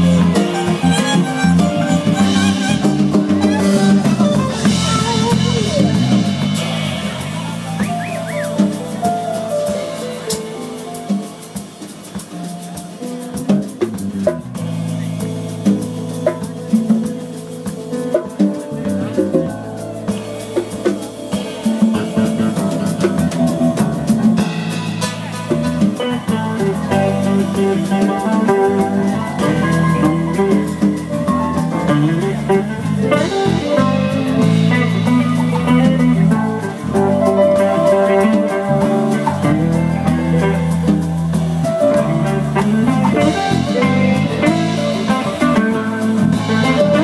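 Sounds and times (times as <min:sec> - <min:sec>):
drum kit: 0:00.0 - 0:47.0
electric guitar: 0:00.0 - 0:47.0
jazz band playing: 0:00.0 - 0:47.0
keyboard: 0:00.0 - 0:47.0
percussion: 0:00.0 - 0:47.0.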